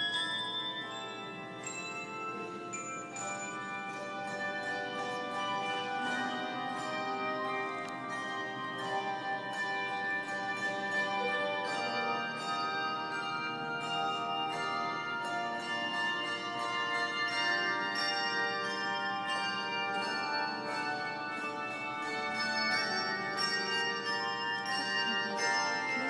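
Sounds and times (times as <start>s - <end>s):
handbell choir playing: 0.0s - 26.0s.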